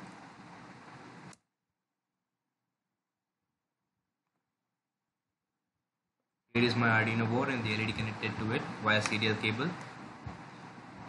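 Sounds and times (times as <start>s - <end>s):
microphone hiss and room noise: 0.0s - 1.4s, 6.5s - 11.0s.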